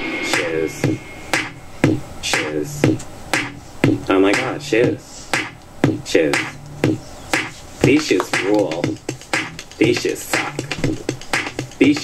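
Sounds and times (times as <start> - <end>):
electronic novelty song: 0.0 - 12.0
snapping beat: 0.4 - 12.0.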